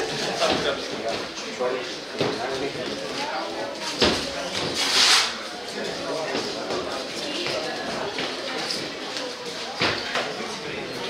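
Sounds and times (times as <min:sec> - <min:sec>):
voices in a sports hall: 0:00.0 - 0:11.0.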